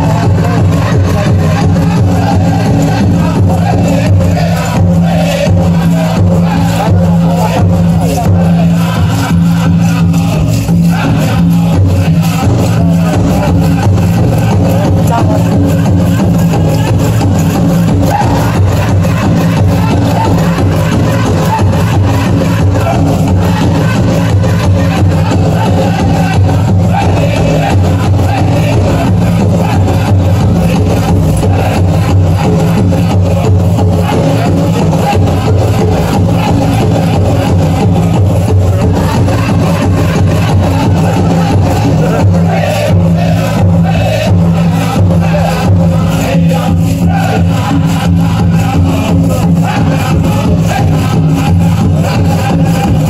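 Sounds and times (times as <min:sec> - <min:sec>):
group singing: 0:00.0 - 0:53.0
loud drum beat: 0:00.0 - 0:53.0.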